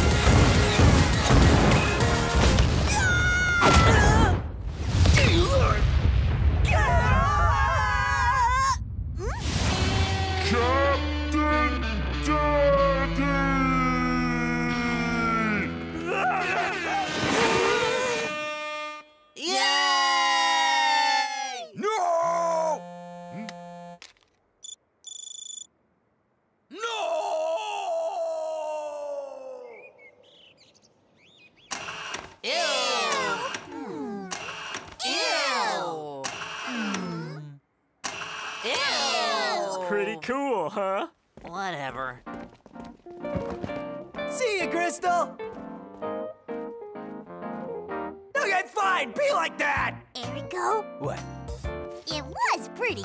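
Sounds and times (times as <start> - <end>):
character cries and groans: 13.6 - 18.3, 19.4 - 22.8, 26.7 - 29.8, 32.4 - 34.4, 35.0 - 37.6, 38.7 - 41.1
electronic phone alert: 24.6 - 25.7.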